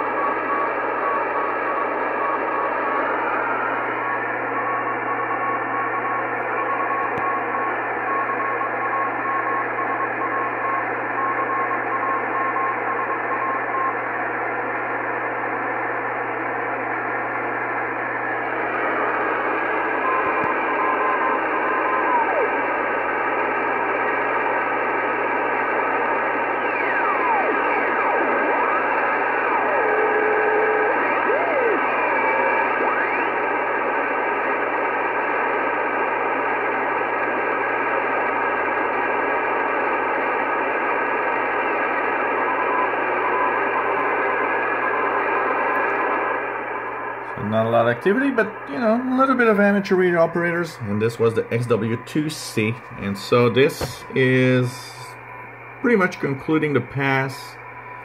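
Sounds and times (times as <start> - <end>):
receiver noise hiss: 0.0 - 58.0.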